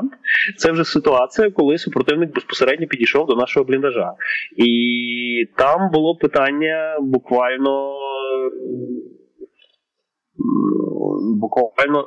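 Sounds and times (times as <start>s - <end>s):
man speaking: 0.0s - 9.2s, 10.4s - 12.0s
man's drawn-out hesitation sound: 0.0s - 9.2s, 10.4s - 12.0s.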